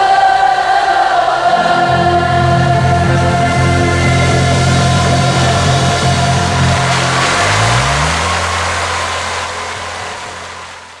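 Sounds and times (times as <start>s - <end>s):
motorcycle engine revving: 3.0s - 11.0s.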